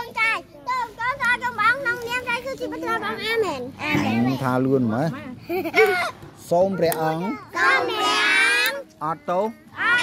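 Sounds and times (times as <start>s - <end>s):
young children talking: 0.0s - 10.0s.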